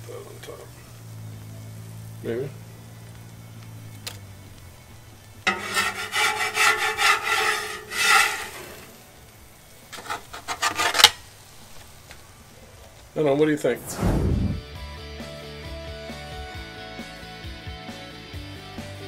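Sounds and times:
metallic clank: 5.5 - 8.9
metal spatula scraping metal: 5.5 - 9.0, 9.9 - 11.2.

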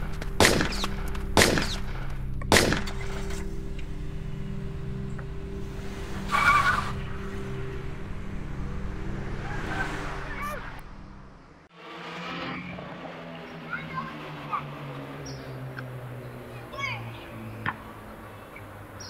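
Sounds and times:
gunshots: 0.4 - 3.3
tire squeal: 6.0 - 7.9, 8.8 - 10.8, 12.2 - 15.5.

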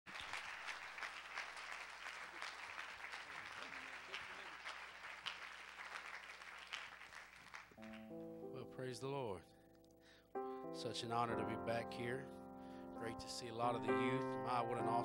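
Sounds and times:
crowd applauding: 0.1 - 8.5
held musical chord: 8.0 - 9.7, 10.4 - 15.0.

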